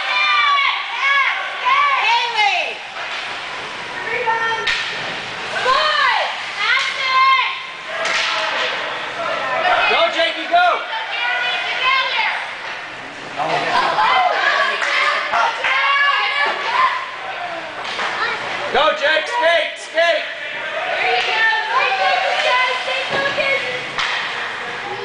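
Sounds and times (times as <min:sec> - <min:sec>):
spectators shouting and cheering: 0:00.0 - 0:02.9, 0:13.7 - 0:18.4, 0:19.1 - 0:25.0.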